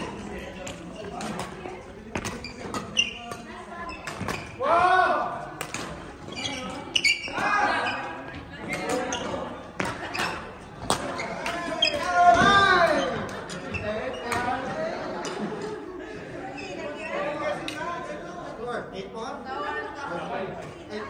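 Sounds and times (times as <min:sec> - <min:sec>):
shoes squeaking on court: 0:00.0 - 0:04.6, 0:05.7 - 0:14.6, 0:16.5 - 0:17.4
rackets striking shuttlecock: 0:00.1 - 0:04.6, 0:05.6 - 0:06.1, 0:08.6 - 0:12.5
players' short calls: 0:06.3 - 0:14.5.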